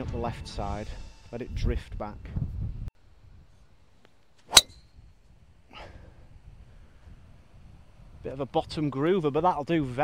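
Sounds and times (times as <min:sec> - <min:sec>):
golf club striking ball: 0:04.5 - 0:04.9.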